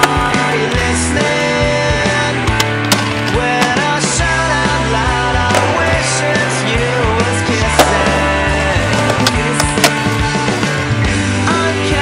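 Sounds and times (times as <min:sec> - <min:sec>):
music: 0:00.0 - 0:12.0
skateboard clacks: 0:02.0 - 0:04.2, 0:05.4 - 0:10.8.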